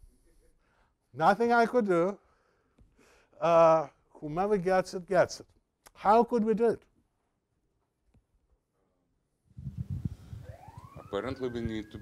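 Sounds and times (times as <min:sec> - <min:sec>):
siren wailing: 0:10.2 - 0:12.0.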